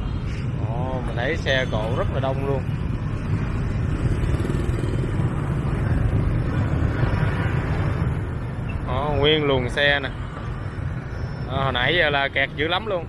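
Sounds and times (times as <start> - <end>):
heavy city traffic drone: 0.0 - 13.0.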